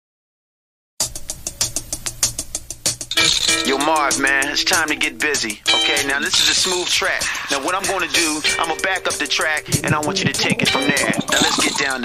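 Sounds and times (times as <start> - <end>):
hip hop drum machine beat: 1.0 - 12.0.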